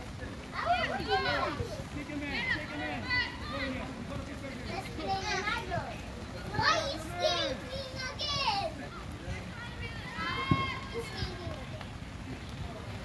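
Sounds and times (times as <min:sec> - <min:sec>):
children shouting: 0:00.5 - 0:03.8, 0:04.9 - 0:08.8, 0:09.5 - 0:11.9.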